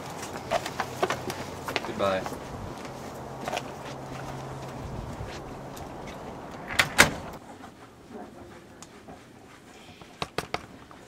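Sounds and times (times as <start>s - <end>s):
front door shutting: 3.3s - 7.4s.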